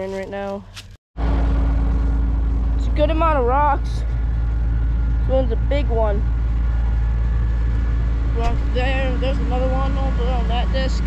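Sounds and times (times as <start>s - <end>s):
tractor engine idling: 1.2s - 11.0s.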